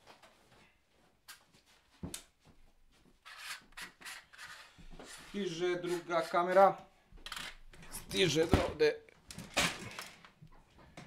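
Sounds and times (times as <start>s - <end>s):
rubbing and rustling: 0.0s - 6.7s.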